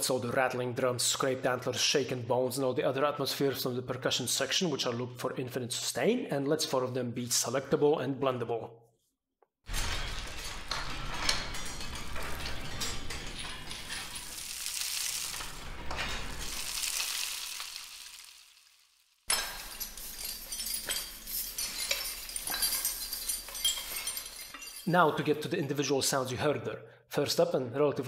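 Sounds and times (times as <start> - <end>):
grinding rocks: 9.7 - 18.4
rainstick: 12.1 - 24.9
clatter of small clicks and clinks: 19.3 - 24.9
rattled bowl of teeth: 19.3 - 24.9.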